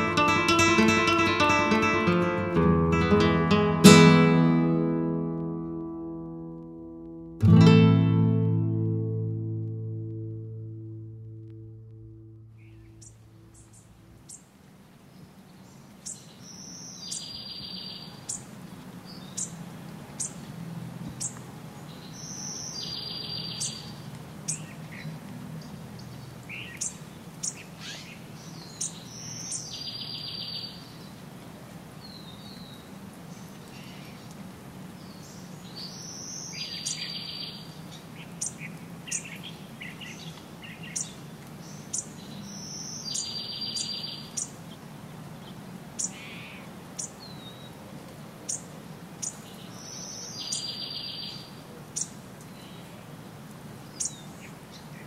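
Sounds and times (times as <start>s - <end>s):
songbird song with buzzy trill: 0.0s - 14.5s, 15.5s - 19.6s, 20.2s - 20.5s, 21.1s - 25.0s, 25.6s - 31.1s, 35.0s - 44.7s, 45.4s - 47.8s, 48.5s - 53.0s, 53.9s - 55.0s
low steady hum: 3.9s - 15.0s
bird chirps: 12.2s - 14.5s, 16.0s - 18.5s, 20.2s - 20.4s, 21.2s - 25.1s, 26.5s - 31.0s, 35.1s - 44.6s, 46.0s - 47.7s, 49.2s - 52.9s, 53.9s - 54.5s.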